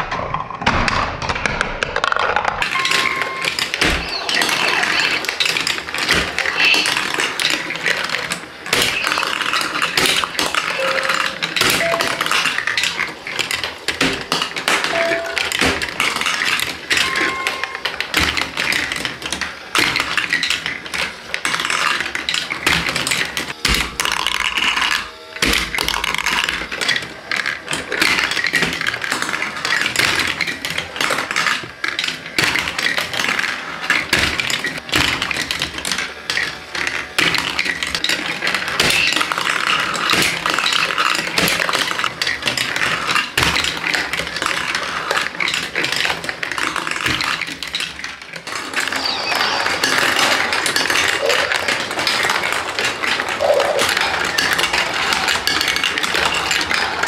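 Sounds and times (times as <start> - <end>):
marbles rattling through plastic tracks: 0.1 - 57.0.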